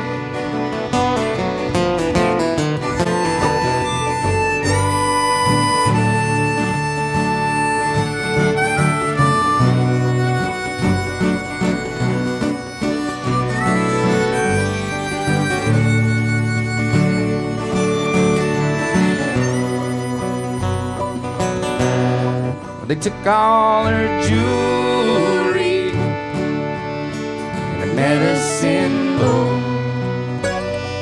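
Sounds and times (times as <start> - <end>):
harmonica melody: 0.0 - 31.0
strummed guitar: 0.0 - 31.0.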